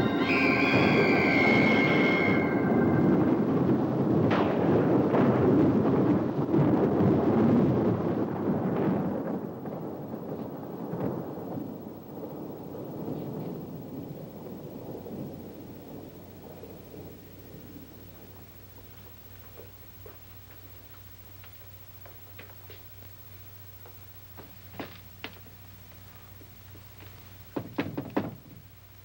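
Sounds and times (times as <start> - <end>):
held organ chord: 0.0 - 3.8
loud low rumble with cracks: 0.0 - 29.0.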